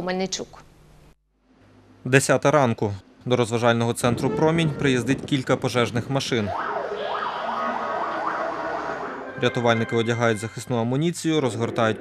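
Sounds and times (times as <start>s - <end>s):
fire engine siren yelping: 6.2s - 10.6s.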